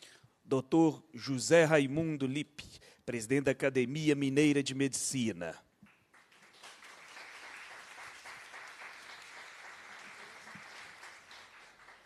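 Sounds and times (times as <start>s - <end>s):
audience applause: 6.1s - 12.0s.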